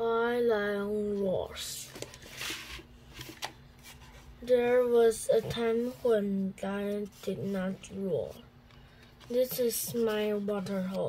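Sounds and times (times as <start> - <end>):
book page turning: 1.8 - 4.3.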